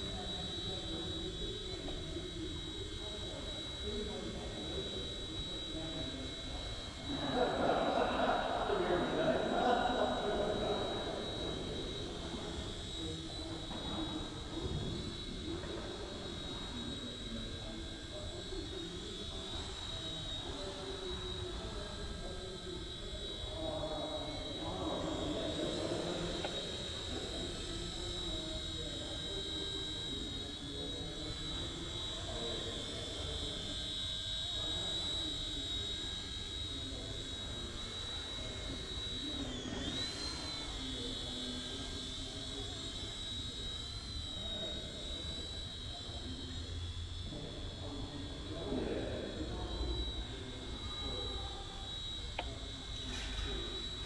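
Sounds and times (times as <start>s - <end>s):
helicopter motor and rotors whining: 0.0s - 54.0s.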